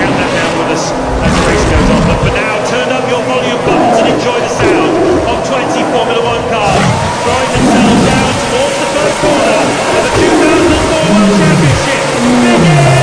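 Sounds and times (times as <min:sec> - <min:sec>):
person speaking: 0:00.0 - 0:13.0
racing car engines: 0:00.0 - 0:13.0.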